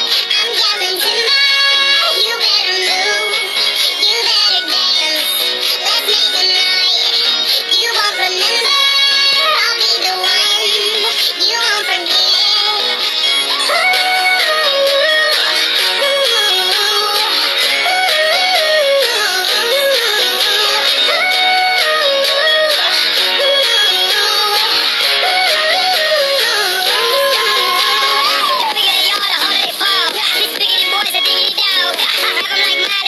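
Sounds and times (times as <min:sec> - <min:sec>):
girl singing along: 0:00.0 - 0:33.0
pop song with auto-tuned vocals: 0:00.0 - 0:33.0.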